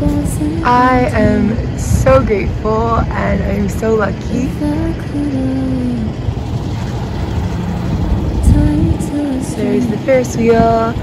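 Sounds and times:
city traffic rumble: 0.0s - 11.0s
wind buffeting microphone: 0.0s - 11.0s.

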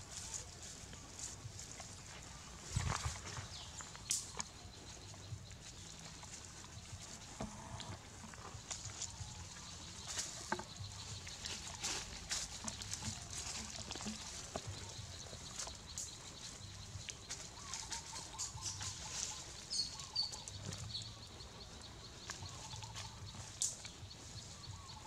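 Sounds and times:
rustling of dry leaves and twigs: 0.0s - 25.0s.

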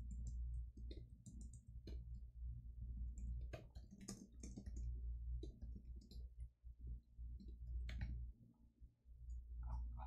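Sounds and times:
computer keyboard typing: 0.0s - 2.1s, 3.0s - 6.3s
low steady hum: 0.0s - 10.0s.

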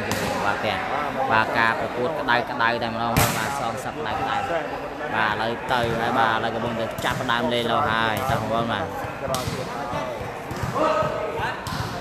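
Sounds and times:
voices: 0.0s - 12.0s
volleyball thudding: 8.1s - 12.0s.

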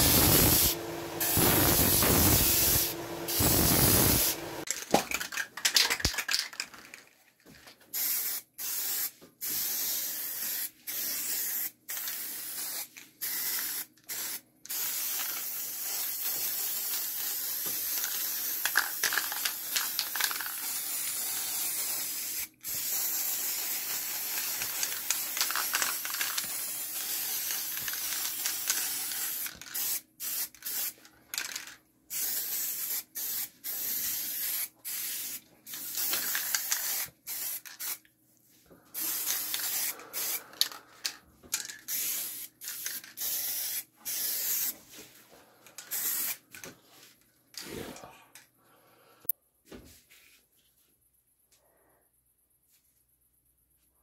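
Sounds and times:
spray-paint can hissing: 0.0s - 4.6s, 7.9s - 38.0s, 39.0s - 40.8s, 41.6s - 44.7s, 45.9s - 46.4s.

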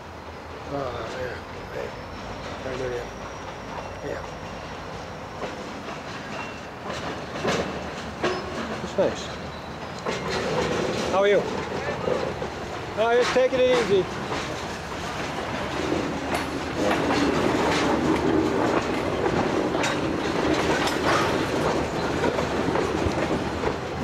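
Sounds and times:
train wheels knocking on rail joints: 2.2s - 24.0s.

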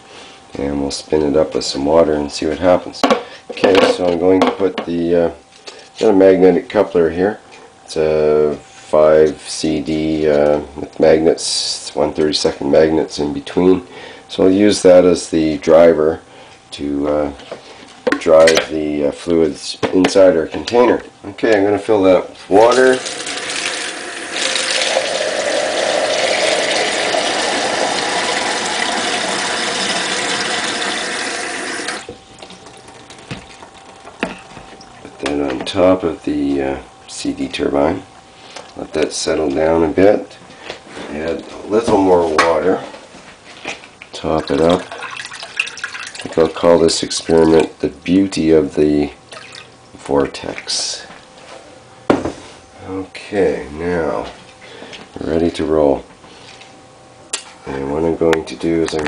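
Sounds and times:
water filling plastic container: 22.7s - 33.8s, 44.5s - 46.5s.

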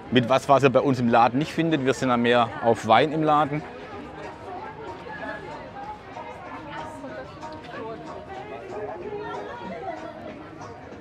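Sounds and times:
people talking and chatting: 0.0s - 11.0s.

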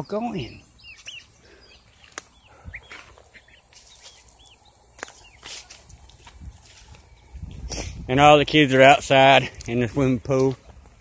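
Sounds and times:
chicks peeping: 0.0s - 10.8s
footsteps on dry ground: 1.0s - 11.0s
sharp clicks: 2.1s - 2.4s.

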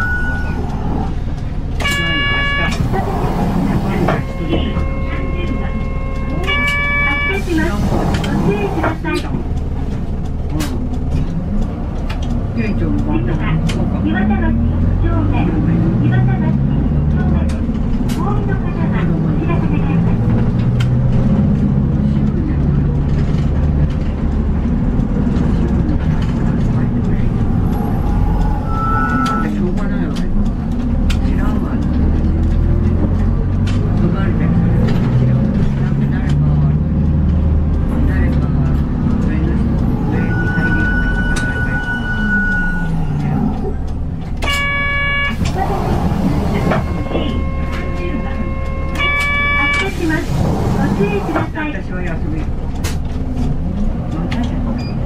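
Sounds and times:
bus diesel engine droning: 0.0s - 55.0s.

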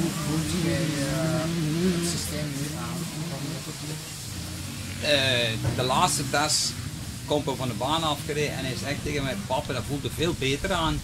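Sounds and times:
even background noise: 0.0s - 11.0s.

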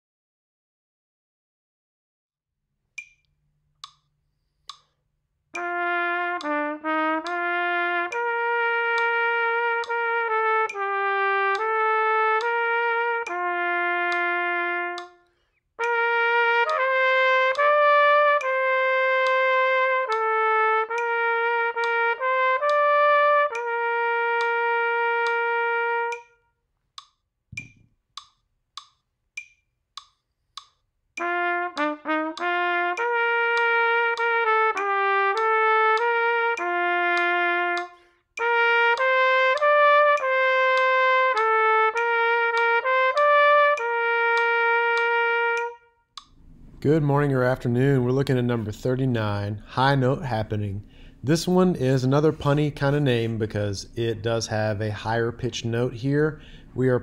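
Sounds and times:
metronome clicking: 2.9s - 26.4s, 27.0s - 46.4s
trumpet playing: 5.6s - 26.6s, 31.2s - 57.0s.

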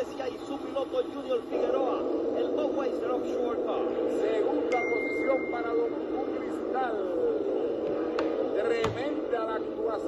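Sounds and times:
commentator's voice: 0.0s - 7.8s, 8.4s - 10.0s.

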